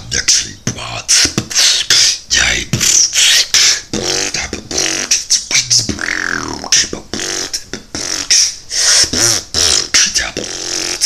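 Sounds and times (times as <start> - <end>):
vocal beatboxing: 0.0 - 11.0.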